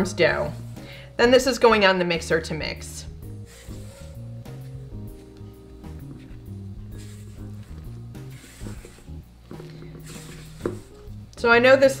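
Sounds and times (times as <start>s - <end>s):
background music with bass line: 2.9s - 11.4s
spatula scraping mixing bowl: 3.4s - 11.1s.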